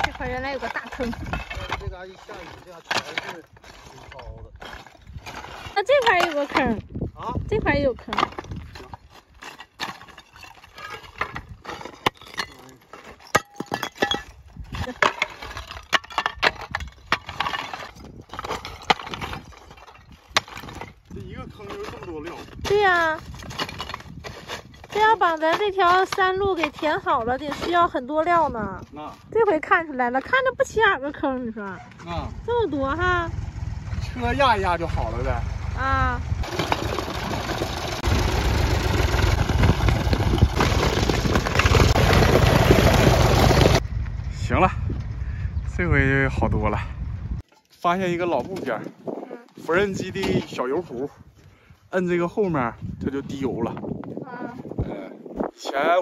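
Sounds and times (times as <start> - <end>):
clay roof tiles clinking: 0.0 - 6.8, 8.0 - 28.3
tractor engine running: 32.2 - 45.2.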